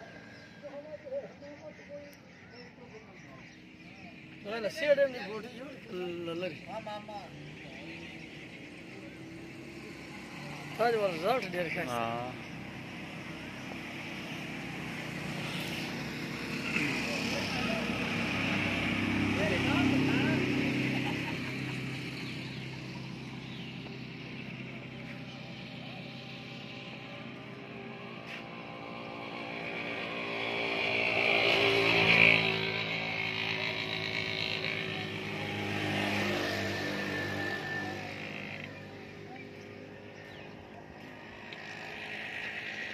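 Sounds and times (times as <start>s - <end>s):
vehicle engine running: 1.8s - 42.9s
faint voices: 15.3s - 23.0s.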